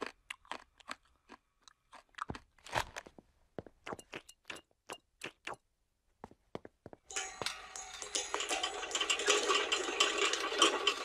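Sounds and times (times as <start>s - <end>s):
crunchy snack being chewed: 0.0s - 3.1s.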